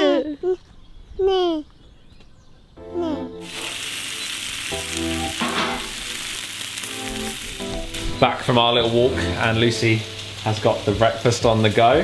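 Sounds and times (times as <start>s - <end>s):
music: 2.8s - 12.0s
bacon sizzling in a frying pan: 3.4s - 12.0s.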